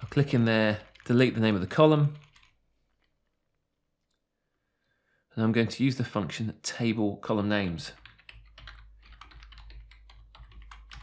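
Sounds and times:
man speaking: 0.0 - 2.3, 5.4 - 8.0.

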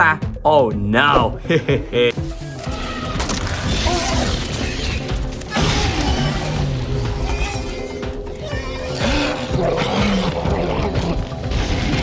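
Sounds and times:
creatures shrieking and squealing: 2.6 - 12.0.

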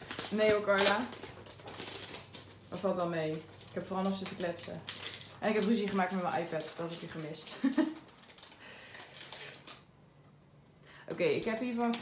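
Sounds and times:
plastic sleeve rustling: 0.0 - 9.9, 11.2 - 12.0.

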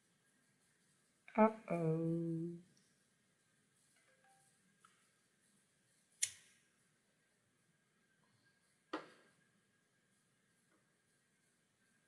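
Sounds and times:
sharp clicks: 6.2 - 6.6.

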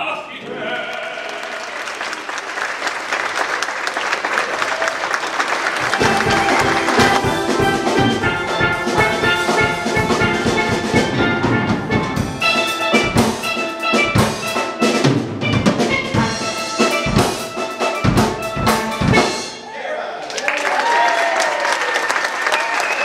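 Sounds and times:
audience applauding: 0.4 - 8.9, 20.2 - 23.0
steel drum band playing: 5.8 - 19.7.

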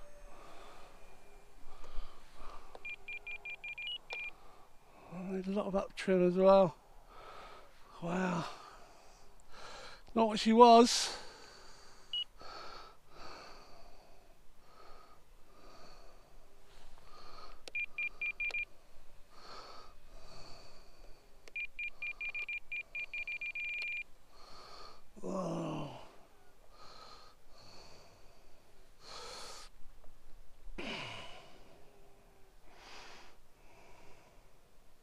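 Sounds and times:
falling sigh: 0.0 - 3.1, 24.5 - 28.1
soft breaths: 0.0 - 5.7, 6.7 - 10.2, 11.0 - 30.1, 30.8 - 35.0
short high beeps: 2.8 - 4.3, 17.7 - 18.7, 21.6 - 24.0.

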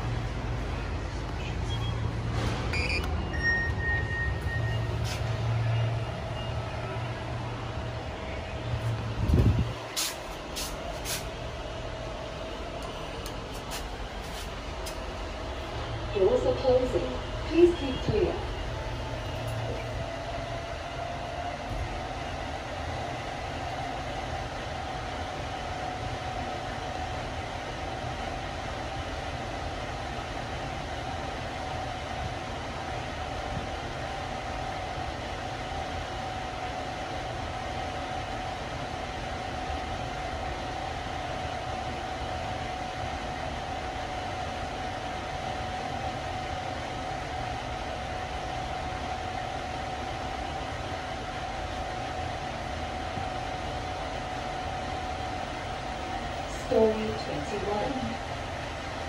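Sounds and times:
lift car rushing ride noise: 0.0 - 59.0.

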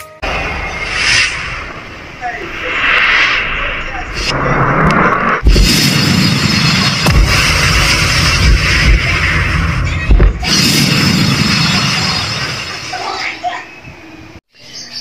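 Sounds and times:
deep booms: 0.2 - 12.5
dense rushing noise: 0.2 - 13.2.

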